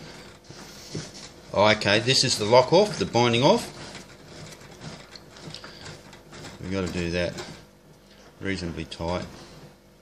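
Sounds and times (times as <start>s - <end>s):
thread rubbing: 0.0s - 8.4s.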